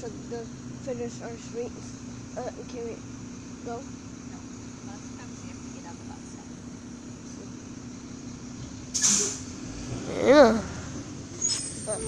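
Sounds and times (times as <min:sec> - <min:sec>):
truck engine humming: 0:00.0 - 0:12.0
air brakes hissing: 0:08.9 - 0:09.6.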